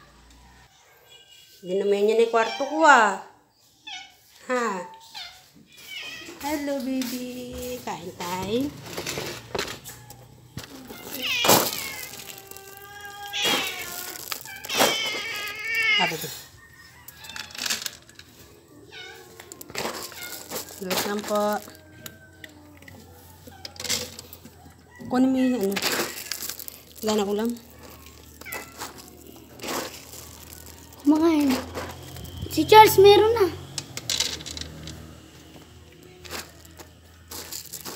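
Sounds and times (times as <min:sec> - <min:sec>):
cats meowing: 0:02.3 - 0:03.1, 0:03.7 - 0:06.4, 0:09.8 - 0:16.5, 0:17.1 - 0:24.4, 0:25.3 - 0:34.0
dry kibble rustling and pouring: 0:06.4 - 0:37.9
cat meowing: 0:10.7 - 0:16.4.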